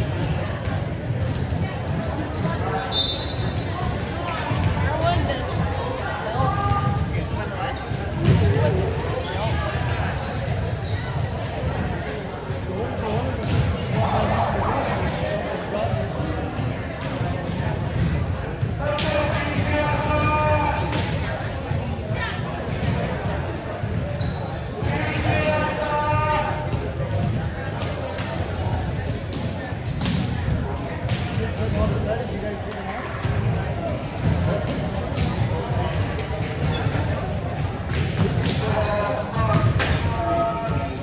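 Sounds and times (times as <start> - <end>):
voices and chatter: 0.0 - 41.0
volleyballs hit and bouncing: 0.0 - 41.0.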